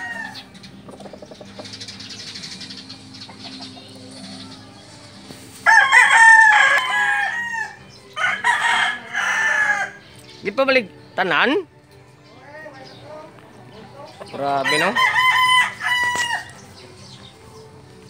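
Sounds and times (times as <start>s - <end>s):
rooster crowing: 5.6s - 10.0s, 15.0s - 16.5s.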